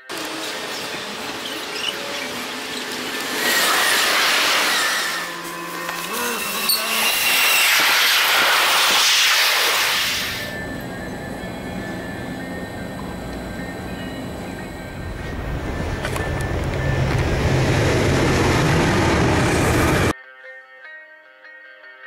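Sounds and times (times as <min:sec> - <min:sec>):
electric train humming at platform: 0:00.0 - 0:20.1
trains passing at speed: 0:00.0 - 0:20.1.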